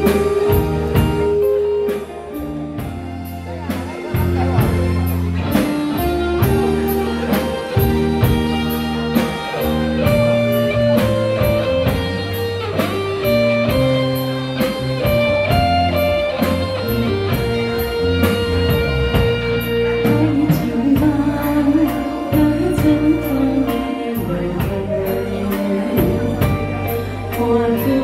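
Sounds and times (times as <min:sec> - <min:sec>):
bass: 0:00.0 - 0:28.0
drum kit steady beat: 0:00.0 - 0:28.0
electric guitar melody: 0:00.0 - 0:28.0.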